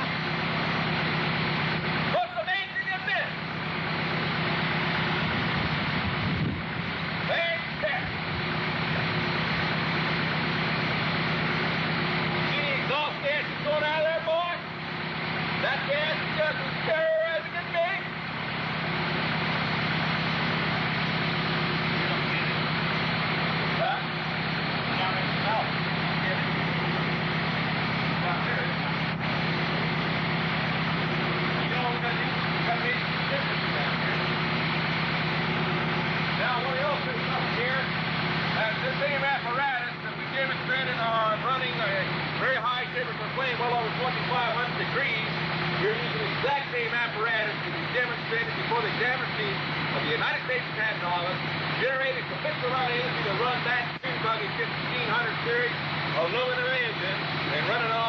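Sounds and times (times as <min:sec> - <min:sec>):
engine idling: 0:00.0 - 0:58.0
indistinct voices talking: 0:07.0 - 0:58.0.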